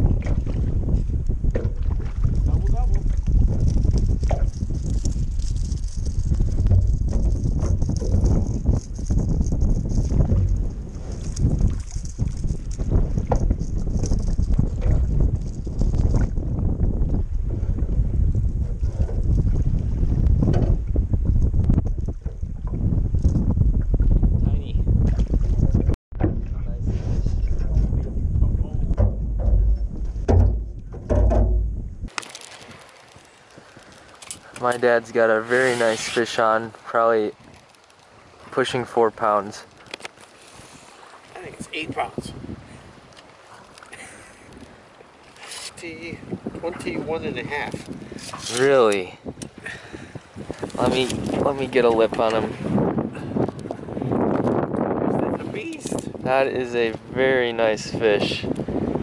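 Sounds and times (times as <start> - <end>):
water sloshing against hull: 0.0 - 59.0
wind buffeting microphone: 0.0 - 59.0.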